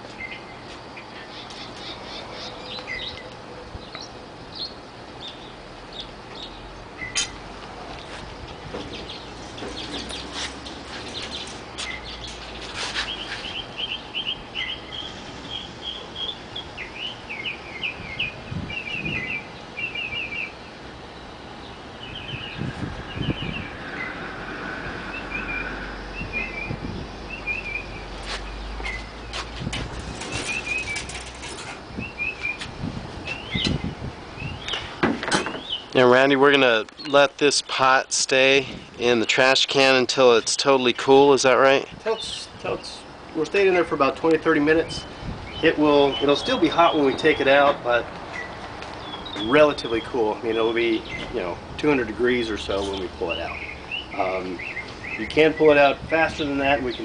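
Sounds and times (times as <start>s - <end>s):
small birds chirping: 0.0s - 57.0s.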